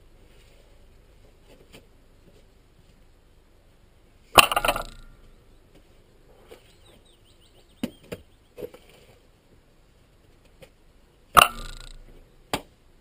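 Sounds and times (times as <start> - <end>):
sharp metal clank: 4.4 - 5.3, 11.4 - 12.1
short rattle: 4.4 - 5.3, 11.4 - 12.2.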